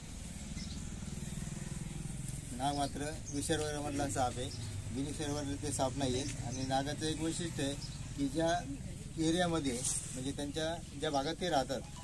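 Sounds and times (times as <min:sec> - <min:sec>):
engine running at low speed: 0:00.0 - 0:11.5.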